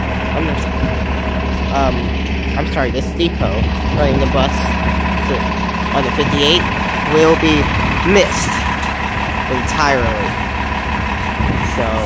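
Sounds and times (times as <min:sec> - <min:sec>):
bus engine idling: 0:00.0 - 0:12.0
constant high hum: 0:00.0 - 0:12.0.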